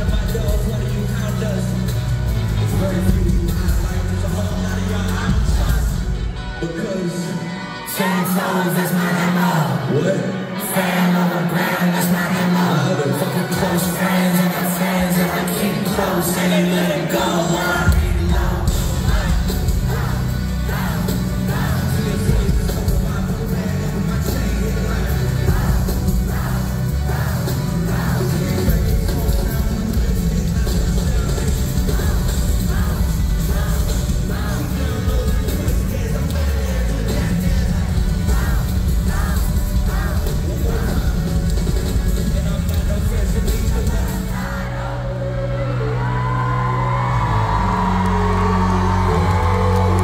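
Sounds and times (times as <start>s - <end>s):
live hip-hop band with heavy bass: 0.0s - 50.0s.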